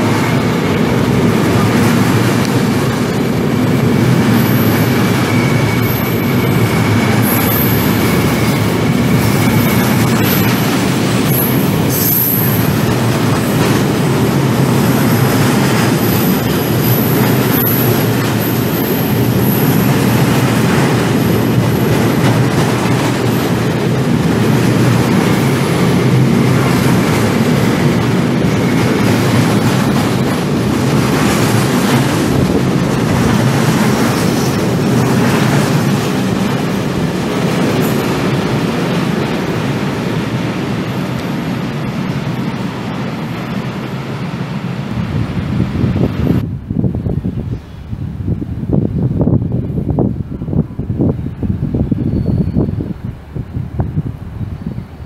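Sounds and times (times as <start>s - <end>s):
steel wheels rumbling on rail: 0.0s - 55.0s
high-pitched wheel squeal: 4.0s - 13.0s, 51.9s - 52.9s.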